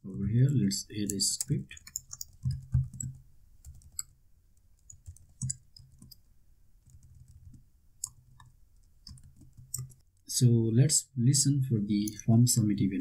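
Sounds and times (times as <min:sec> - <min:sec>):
computer keyboard keystrokes: 0:01.1 - 0:04.2, 0:04.8 - 0:06.2.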